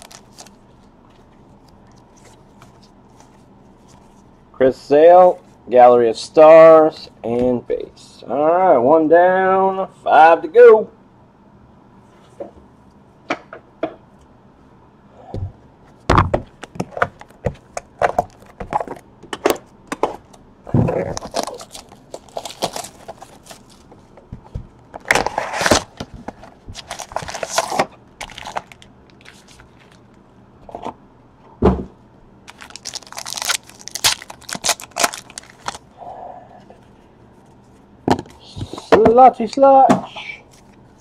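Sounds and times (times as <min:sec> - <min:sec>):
foil packs ripping open: 0:00.0 - 0:00.6, 0:20.9 - 0:23.9, 0:25.0 - 0:26.0, 0:26.8 - 0:30.0, 0:32.5 - 0:35.8
cardboard and wrapper crackles: 0:00.0 - 0:04.2, 0:20.8 - 0:24.0, 0:25.0 - 0:30.1, 0:32.5 - 0:35.8.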